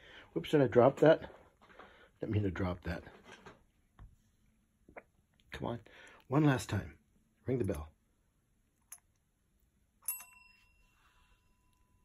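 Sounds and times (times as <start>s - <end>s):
desk service bell ringing: 10.0s - 12.0s.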